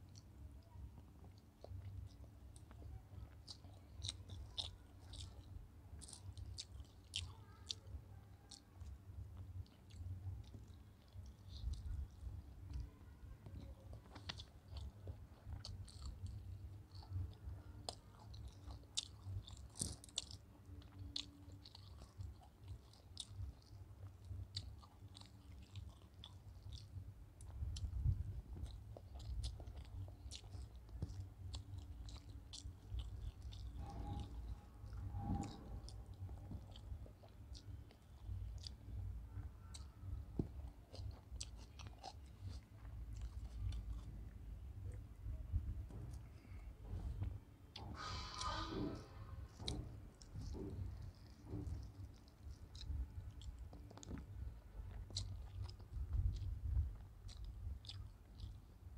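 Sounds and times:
close-up chewing: 0.0s - 58.9s
low steady rumble: 0.0s - 58.9s
wet mouth sounds: 0.1s - 58.9s.

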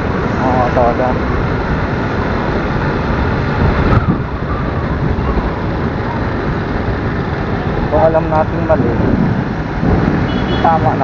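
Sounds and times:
motorcycle road noise: 0.0s - 11.0s.

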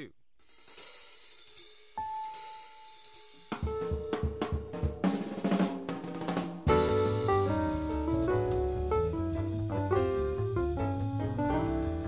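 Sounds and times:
jazz drum kit and bass: 0.0s - 12.0s.

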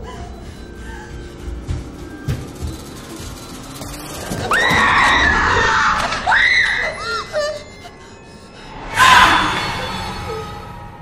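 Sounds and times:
woman screaming in terror: 4.5s - 7.6s, 8.9s - 10.2s.

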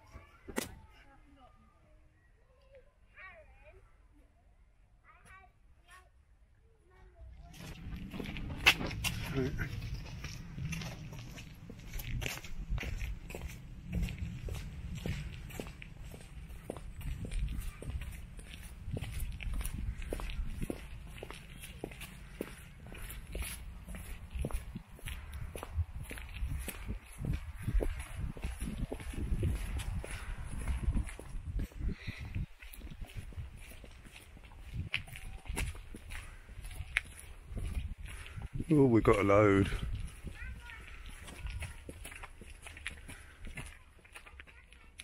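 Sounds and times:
footsteps on paving stones: 7.2s - 45.0s
low rumble: 7.4s - 33.6s.

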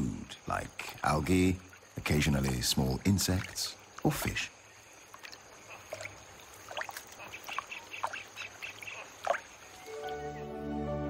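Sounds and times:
water splashing: 0.6s - 10.3s.

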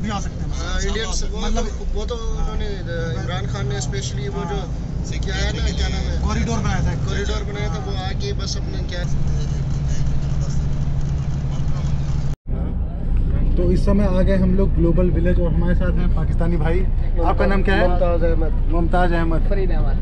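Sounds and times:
bus engine and road rumble: 0.0s - 20.0s
voices talking: 0.0s - 20.0s.

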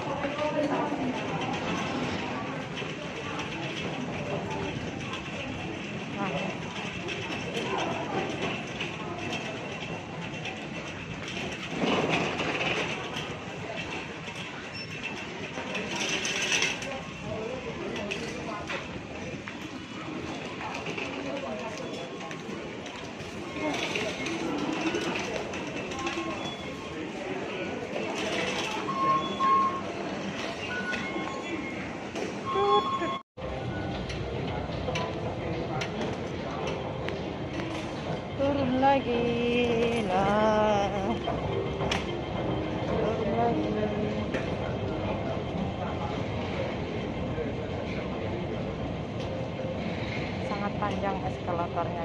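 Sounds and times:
people talking: 0.0s - 10.9s, 32.5s - 52.0s
shopping trolley rolling on tiles: 0.0s - 32.1s, 33.6s - 51.8s.

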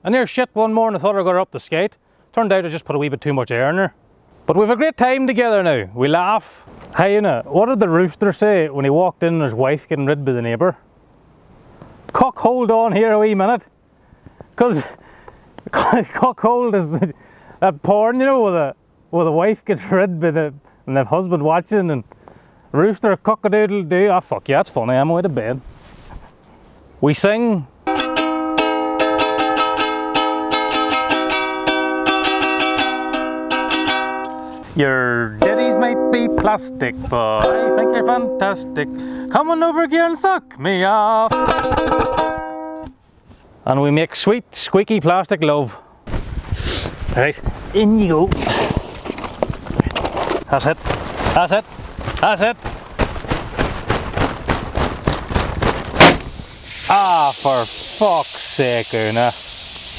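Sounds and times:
ukulele strumming chords: 27.9s - 34.7s, 35.3s - 43.0s
hut being shaken knocking: 52.6s - 56.3s.

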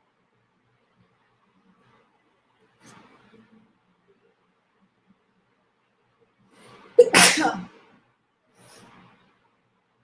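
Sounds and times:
woman sneezing: 7.0s - 7.7s.

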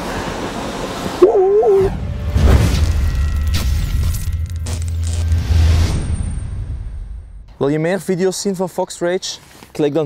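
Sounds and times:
wind: 0.0s - 10.0s
wavering synthetic tone: 1.2s - 2.0s.

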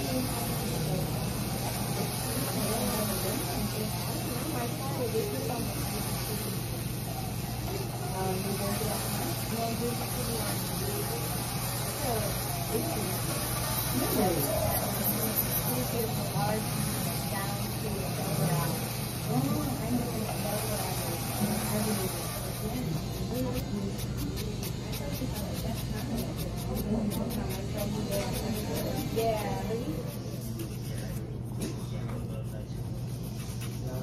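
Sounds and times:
background conversation: 0.0s - 34.0s
steady low hum: 0.0s - 34.0s
nail file scratching fingernail: 13.2s - 16.2s, 21.4s - 34.0s.

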